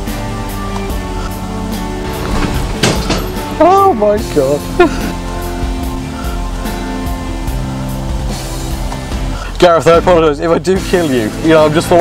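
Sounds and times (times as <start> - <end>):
music with a regular beat: 0.0 - 10.1
burst of noise: 1.9 - 3.6.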